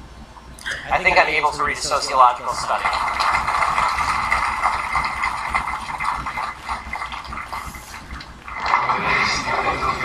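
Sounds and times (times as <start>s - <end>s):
audience applause: 1.6s - 10.0s.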